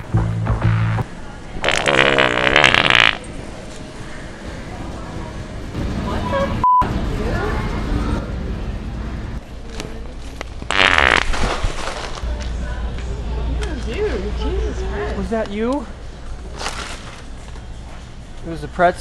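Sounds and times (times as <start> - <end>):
wet fart noises: 1.6 - 3.2, 10.7 - 11.8
censor bleep: 6.6 - 6.9.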